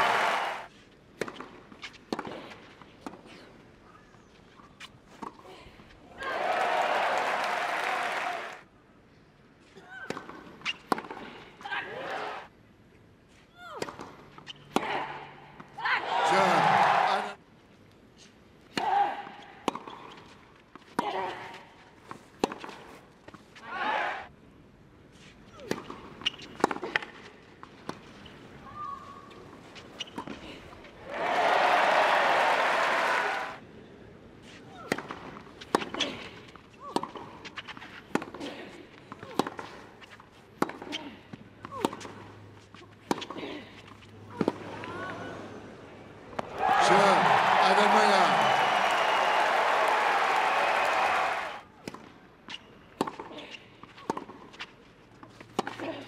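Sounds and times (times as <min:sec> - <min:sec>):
crowd cheering and applause: 0:00.0 - 0:00.7, 0:06.2 - 0:08.6, 0:16.1 - 0:17.4, 0:31.0 - 0:33.6, 0:46.4 - 0:51.6.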